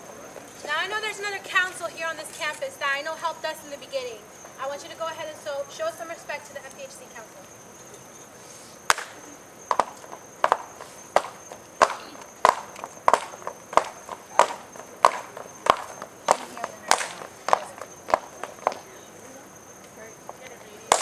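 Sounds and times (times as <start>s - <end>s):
body percussion hits: 8.9s - 18.9s, 20.3s - 21.0s.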